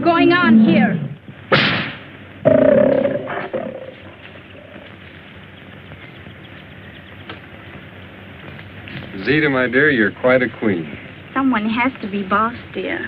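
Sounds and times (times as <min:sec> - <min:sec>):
film soundtrack hiss: 0:00.0 - 0:13.0
big cat roaring: 0:02.4 - 0:04.8.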